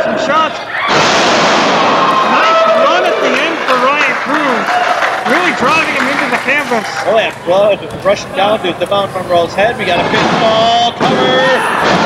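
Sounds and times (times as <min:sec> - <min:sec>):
crowd cheering and applause: 0:00.0 - 0:12.0
voices: 0:02.2 - 0:12.0.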